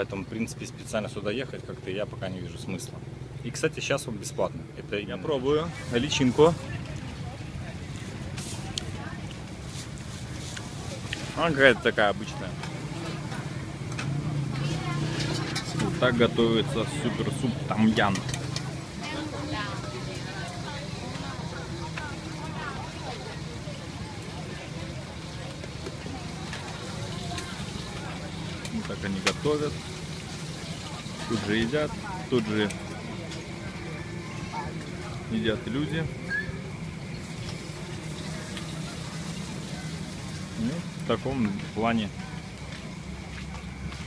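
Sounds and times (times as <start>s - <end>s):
faint voices: 0.0s - 44.0s
low traffic rumble: 0.0s - 44.0s
utensils clinking: 13.9s - 19.3s.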